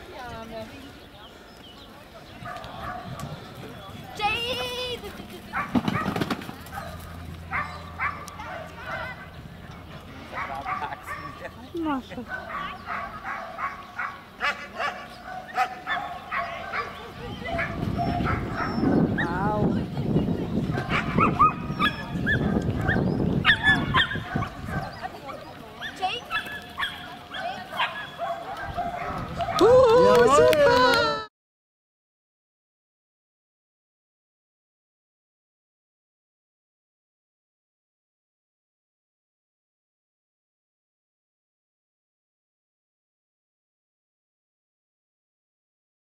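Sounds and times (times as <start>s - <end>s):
dog barking: 2.4s - 3.2s, 5.5s - 9.2s, 10.3s - 11.5s, 12.3s - 19.3s, 20.7s - 25.1s, 25.8s - 29.6s
dog yipping and barking: 17.6s - 19.3s, 20.8s - 25.0s, 25.8s - 29.6s.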